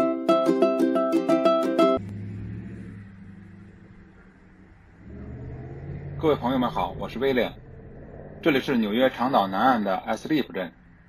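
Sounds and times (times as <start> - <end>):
road traffic rumble: 1.8 - 11.0
car engine running: 2.0 - 11.0.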